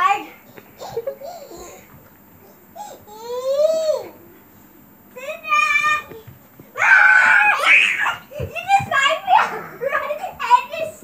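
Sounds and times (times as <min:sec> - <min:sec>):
child screaming excitedly: 0:06.8 - 0:08.2
child shrieking: 0:06.8 - 0:08.4.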